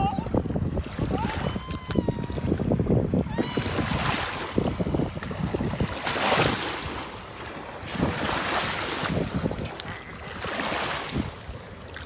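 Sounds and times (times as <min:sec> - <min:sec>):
surf washing: 0:00.0 - 0:12.0
wind buffeting microphone: 0:00.0 - 0:12.0.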